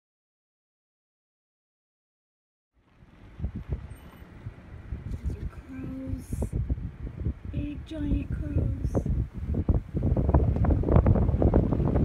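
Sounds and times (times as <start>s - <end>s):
wind buffeting microphone: 3.0s - 12.0s.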